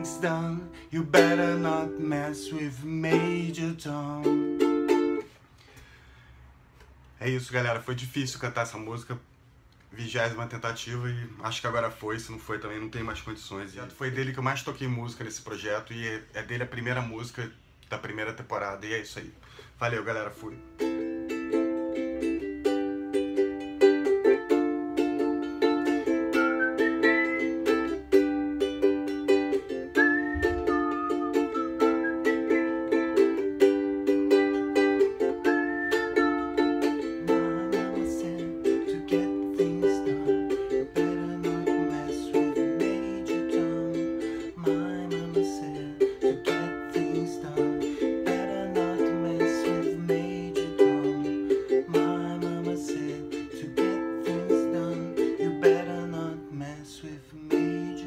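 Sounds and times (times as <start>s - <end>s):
ukulele strumming chords: 0.0s - 5.4s, 20.1s - 58.0s.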